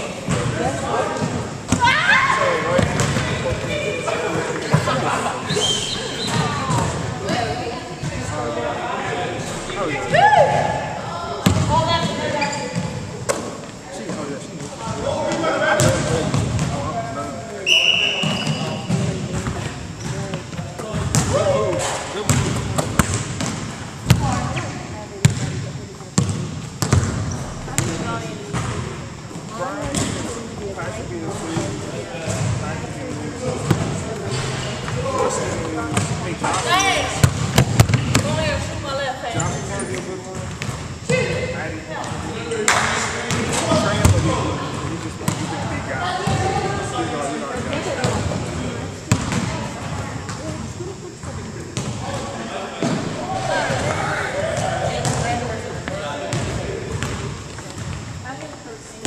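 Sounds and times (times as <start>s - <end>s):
chatter of many players: 0.0s - 59.0s
basketballs bouncing on wooden floor: 11.4s - 12.2s, 26.2s - 28.8s.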